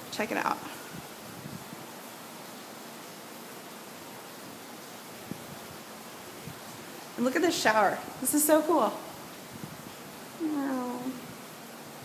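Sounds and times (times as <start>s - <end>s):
woman saying ooh: 10.4s - 11.2s.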